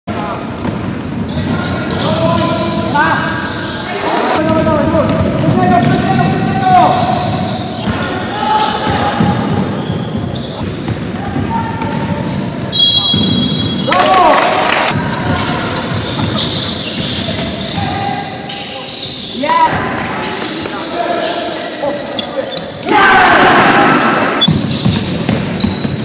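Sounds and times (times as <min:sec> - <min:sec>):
players' voices echoing: 0:00.1 - 0:26.0
basketball bouncing on court: 0:00.4 - 0:01.8, 0:04.4 - 0:08.1, 0:08.8 - 0:13.9, 0:14.9 - 0:17.9, 0:24.4 - 0:26.0
shoe squeaks: 0:00.4 - 0:13.9, 0:15.0 - 0:23.0, 0:24.2 - 0:26.0.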